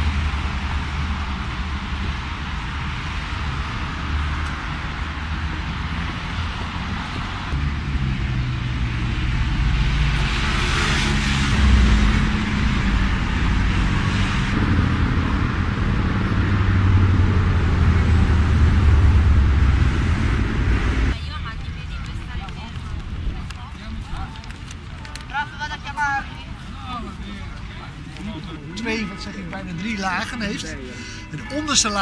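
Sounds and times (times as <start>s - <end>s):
road traffic noise: 0.0s - 32.0s
vehicle engine running: 7.4s - 23.5s.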